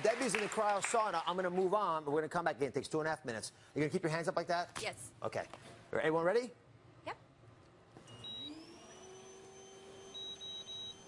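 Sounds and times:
machine whine: 8.0s - 11.0s
keypad beep: 10.1s - 11.0s.

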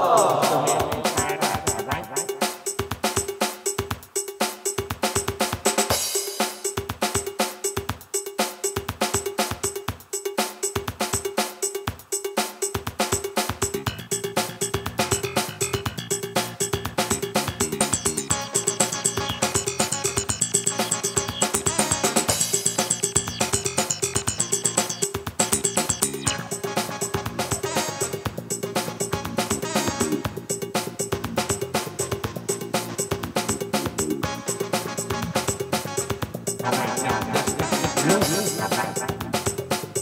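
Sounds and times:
synth parts: 0.0s - 2.7s, 17.2s - 29.3s, 36.6s - 39.7s
drum machine beat: 0.0s - 40.0s.

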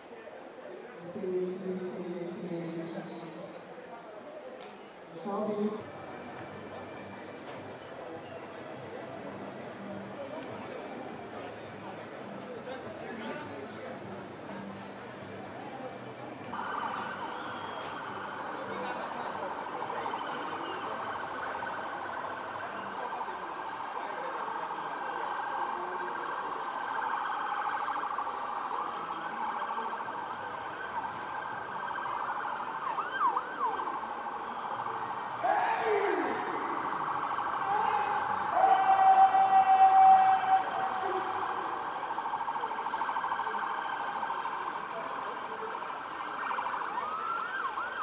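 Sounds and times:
emergency vehicle siren: 16.3s - 48.0s.

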